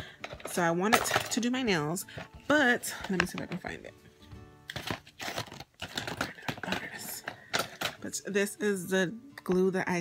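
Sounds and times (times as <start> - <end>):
small hard objects clattering: 4.7 - 8.1.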